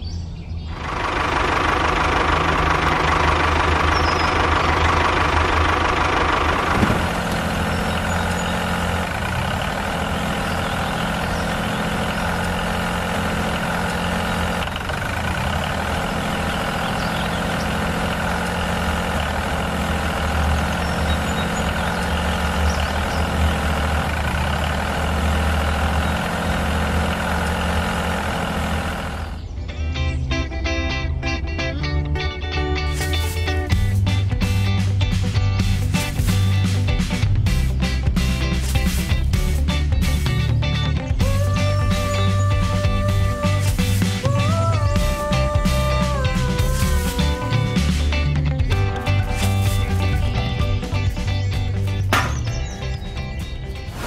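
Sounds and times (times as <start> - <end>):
tractor engine running: 0.0 - 54.0.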